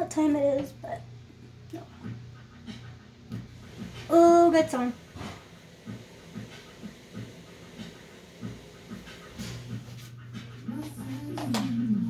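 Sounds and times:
soft rhythmic breath-like sounds: 4.8s - 12.0s.

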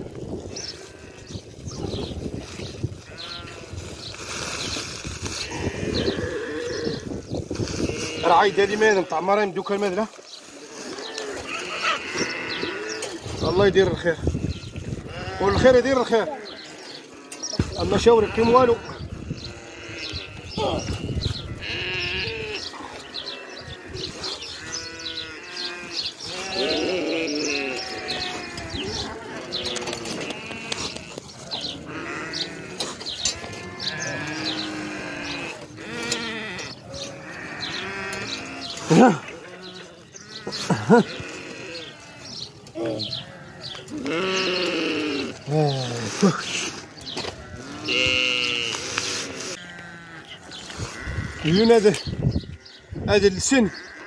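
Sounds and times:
sheep bleating: 0.7s - 1.4s, 3.0s - 3.8s, 5.3s - 7.1s, 7.8s - 9.6s, 10.8s - 13.2s, 14.9s - 46.6s, 47.2s - 51.9s.

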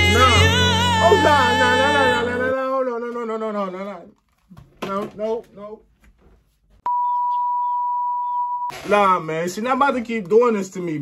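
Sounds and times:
steady test-tone beep: 6.9s - 8.7s.

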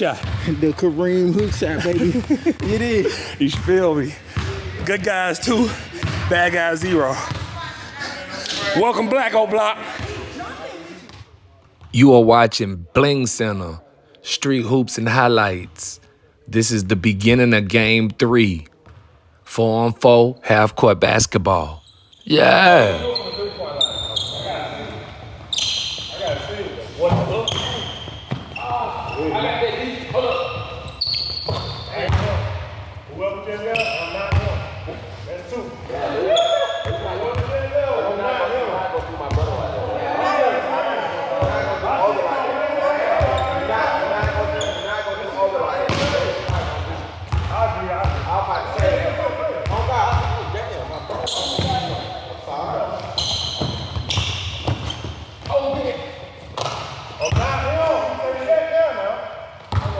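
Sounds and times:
basketball bouncing on court: 0.1s - 0.6s, 5.9s - 7.6s, 27.0s - 28.6s, 31.4s - 32.6s, 34.3s - 34.7s, 36.8s - 37.6s, 45.8s - 50.4s, 53.0s - 55.9s, 59.6s - 59.9s
players calling out: 19.5s - 32.4s.

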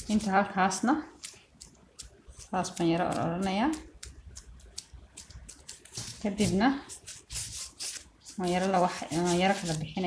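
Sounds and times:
hands rolling dough on wood: 1.2s - 10.0s.

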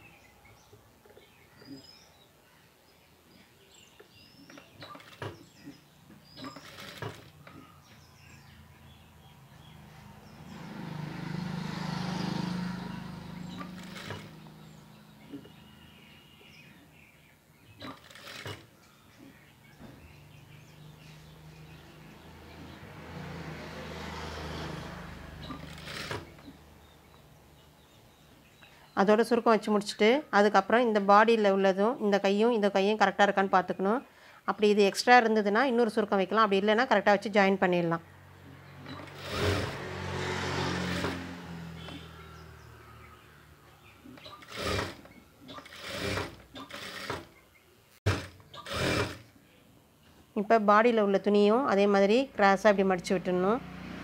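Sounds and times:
sewing machine stitching: 4.5s - 5.4s, 6.4s - 7.6s, 13.4s - 14.4s, 17.8s - 18.7s, 25.4s - 26.5s, 38.8s - 39.9s, 40.7s - 42.0s, 44.2s - 47.3s, 48.0s - 49.3s.

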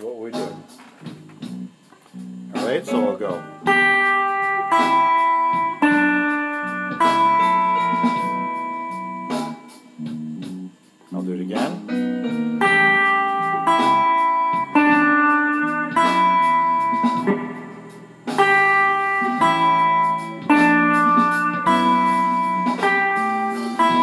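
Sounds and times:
electric guitar notes: 0.0s - 24.0s.

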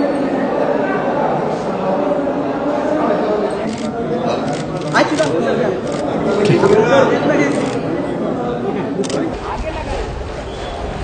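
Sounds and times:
chatter of voices: 0.0s - 11.0s.

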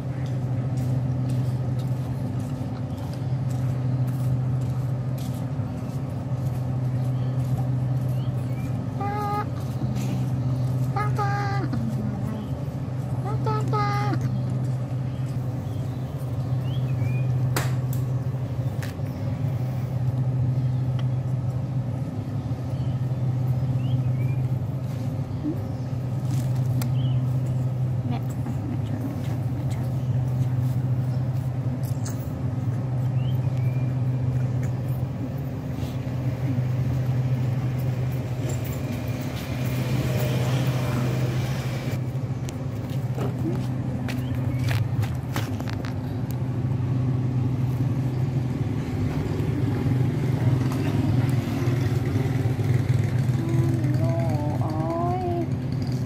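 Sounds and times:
low machine hum: 0.0s - 56.0s.

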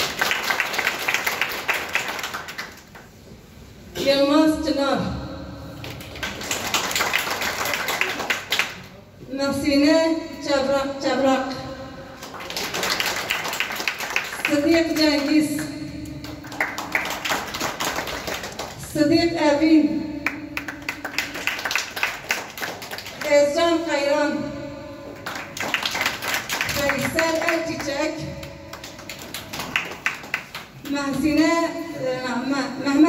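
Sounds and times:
group of people clapping: 0.0s - 3.2s, 5.8s - 9.0s, 12.2s - 19.0s, 20.2s - 23.4s, 25.1s - 31.4s
people applauding: 0.0s - 3.2s, 5.8s - 8.9s, 12.2s - 15.4s, 16.2s - 18.9s, 20.2s - 23.3s, 25.2s - 28.0s, 28.7s - 30.8s.

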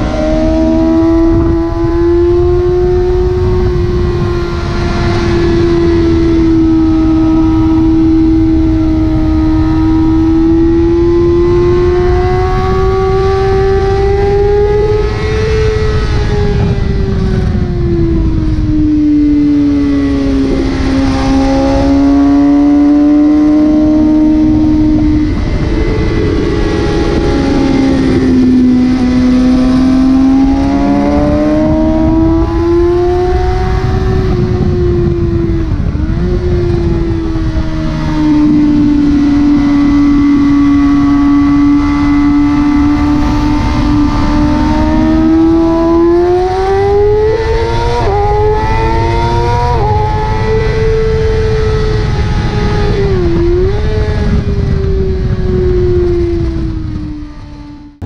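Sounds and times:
motorcycle engine at high revs: 0.0s - 58.0s
wind rush on microphone: 0.0s - 58.0s.

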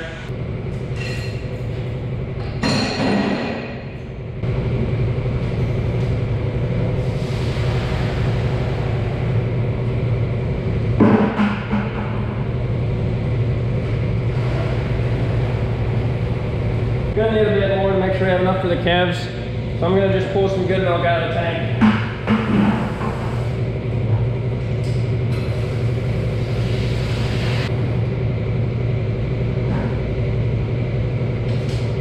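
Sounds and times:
low machinery hum: 0.0s - 32.0s.

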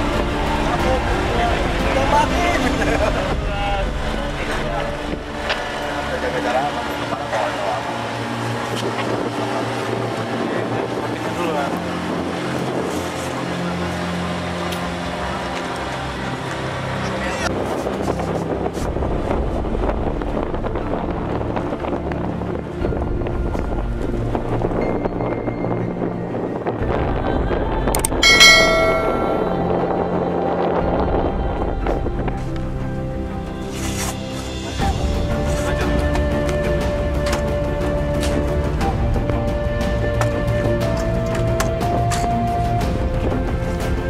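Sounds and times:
wind rumble on microphone: 0.0s - 44.0s
men talking indistinctly: 0.5s - 5.2s, 5.8s - 8.2s, 9.2s - 12.2s
steady low rumble: 18.2s - 36.0s
bright bell-like chime: 28.2s - 29.8s.

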